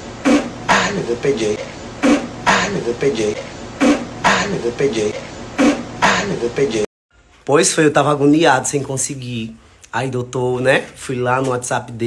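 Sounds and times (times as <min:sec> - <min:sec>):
man making vocal sounds: 0:00.2 - 0:06.9.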